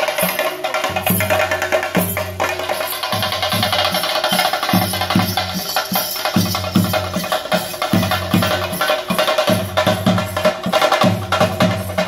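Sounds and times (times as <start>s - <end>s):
drums beating fast rhythm: 0.0s - 12.0s
high ringing percussion: 0.0s - 12.0s.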